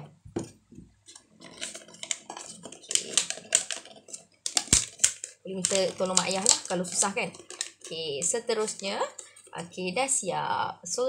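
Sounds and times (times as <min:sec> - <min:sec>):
paper crinkling and rustling: 0:01.0 - 0:09.6.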